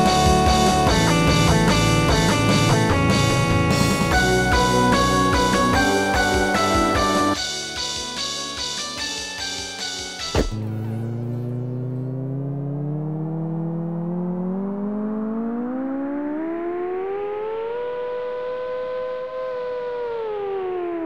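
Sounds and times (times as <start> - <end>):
synthesizer tone gliding in pitch: 10.3 - 21.0.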